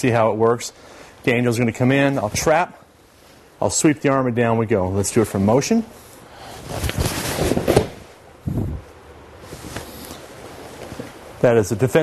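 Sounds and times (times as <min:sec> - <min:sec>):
body thudding on mat: 0:06.9 - 0:08.1.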